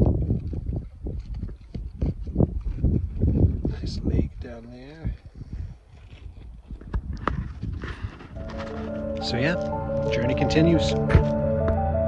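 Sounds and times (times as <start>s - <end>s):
wind rumble on microphone: 0.0s - 8.9s
footsteps on loose rocks: 0.0s - 9.0s.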